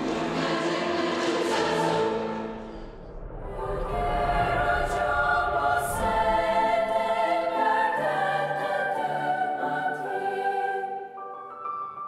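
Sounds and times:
choir singing held chords: 0.0s - 11.5s.

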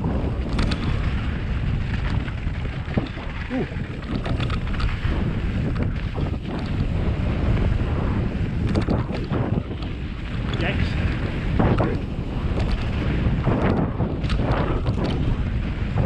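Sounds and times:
bike clicks and rattles: 0.0s - 16.0s
tyres rumbling on dirt and gravel: 0.0s - 16.0s
wind buffeting microphone: 0.0s - 16.0s.

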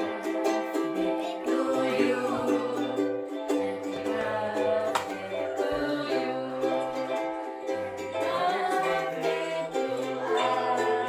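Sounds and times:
ukulele music: 0.0s - 11.0s.

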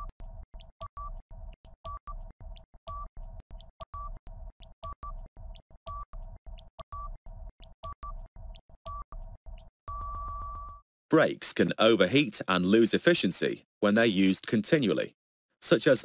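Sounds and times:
electronic countdown timer music: 0.0s - 10.8s
beep tones: 5.9s - 6.1s, 7.8s - 8.3s, 9.9s - 10.8s.

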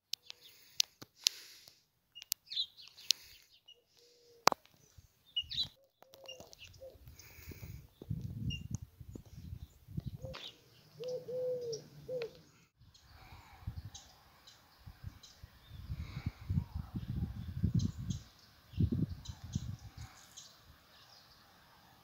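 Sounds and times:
small birds chirping: 0.0s - 22.0s
dove cooing: 6.1s - 7.1s, 10.1s - 12.5s
wind rumble on microphone: 7.0s - 10.4s, 13.2s - 14.1s, 14.8s - 20.8s.

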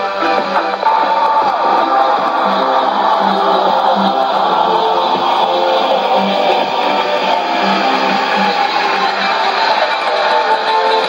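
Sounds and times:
guitar music over radio speaker: 0.0s - 11.0s
shortwave radio hiss: 0.0s - 11.0s.

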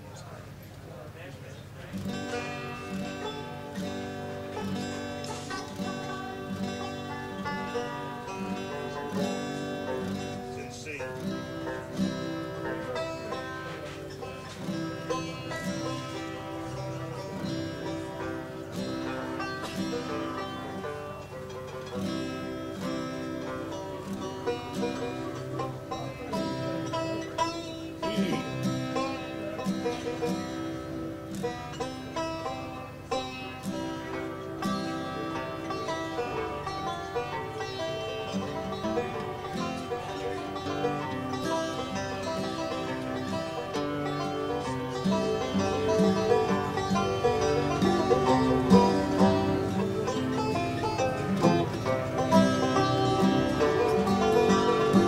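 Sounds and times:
banjo playing: 0.0s - 55.0s.

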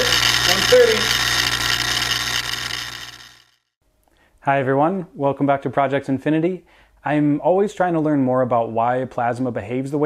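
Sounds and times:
high-voltage electrical buzz: 0.0s - 3.6s.

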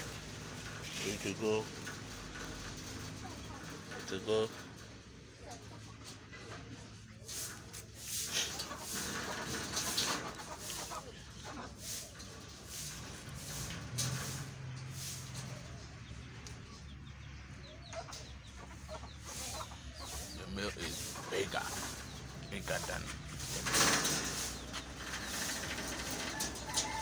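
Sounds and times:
chickens clucking: 0.0s - 27.0s
rabbits rustling on wire cage: 0.0s - 27.0s.

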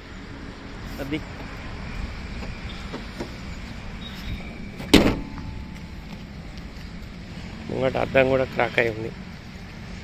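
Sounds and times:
car bonnet slamming shut: 4.8s - 5.8s.

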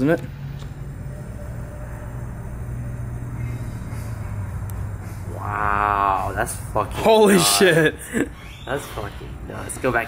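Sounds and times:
vehicle engine droning: 0.0s - 7.4s.

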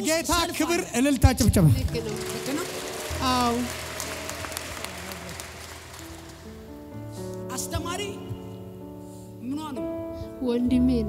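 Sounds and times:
crowd applauding: 1.4s - 7.4s.

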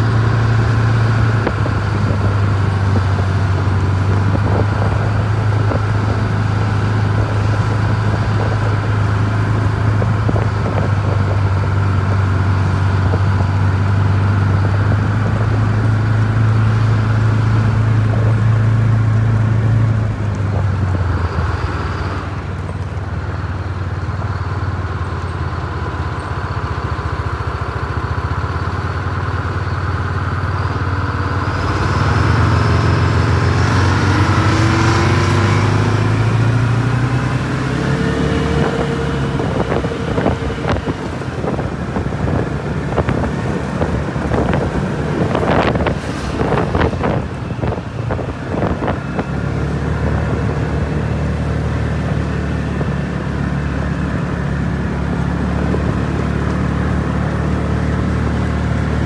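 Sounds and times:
tyres on gravel road: 0.0s - 59.0s
vehicle engine drone: 0.0s - 59.0s
rising engine whine: 28.6s - 59.0s.

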